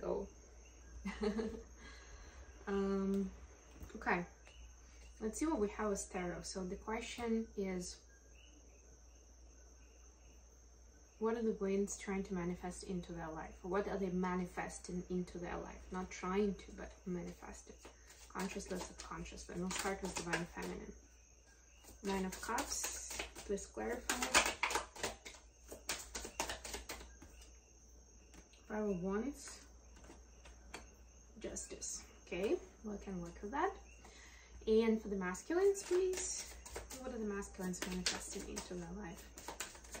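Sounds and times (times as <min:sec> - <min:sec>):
night insect chirping: 0:00.0 - 0:40.0
cards being shuffled: 0:17.8 - 0:20.8, 0:21.8 - 0:27.4, 0:30.0 - 0:30.8, 0:35.6 - 0:40.0.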